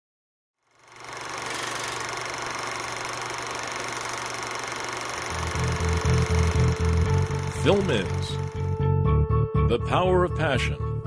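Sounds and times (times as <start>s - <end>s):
mechanical whirring hiss: 1.1s - 8.8s.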